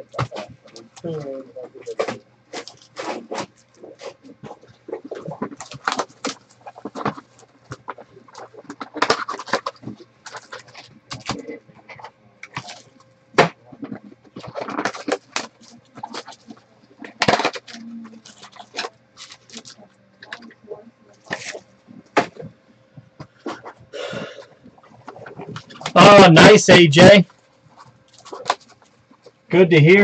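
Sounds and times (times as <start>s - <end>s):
foil wrappers crinkling: 1.8s - 13.0s, 13.8s - 20.5s, 21.2s - 22.5s, 27.3s - 29.4s.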